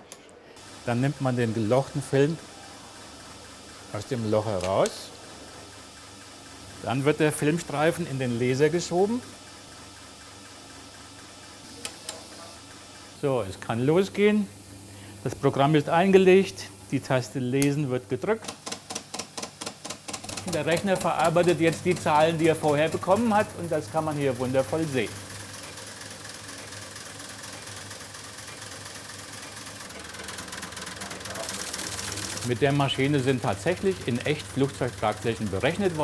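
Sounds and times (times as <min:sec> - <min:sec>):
steady low hum: 0:20.2 - 0:36.0.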